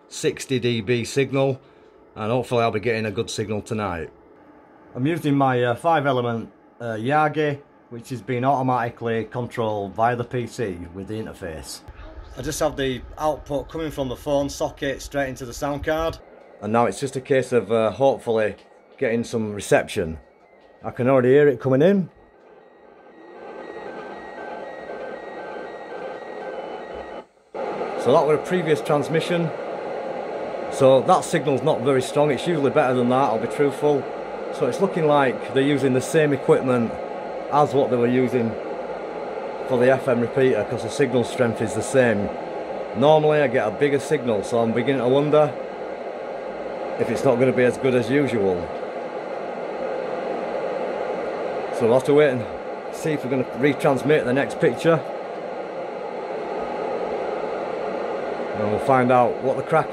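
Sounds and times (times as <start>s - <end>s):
faint repeating signal tones: 0.0s - 59.9s
radio hiss: 0.0s - 59.9s.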